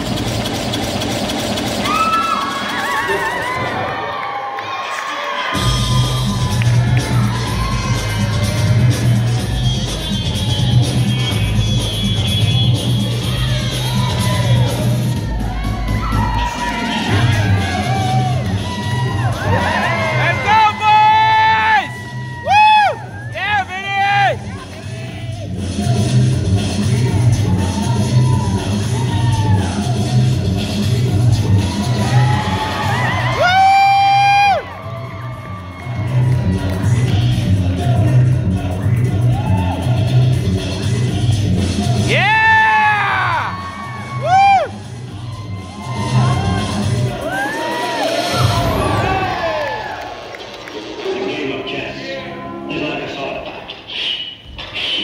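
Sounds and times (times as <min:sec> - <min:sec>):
dance music with bass beat: 0:00.0 - 0:03.7, 0:05.5 - 0:49.4
crowd cheering: 0:01.0 - 0:25.8, 0:26.6 - 0:38.1, 0:41.8 - 0:52.0
audience whoops and shouts: 0:01.7 - 0:11.6, 0:12.8 - 0:24.7, 0:26.9 - 0:37.1, 0:39.2 - 0:40.3, 0:42.0 - 0:50.7.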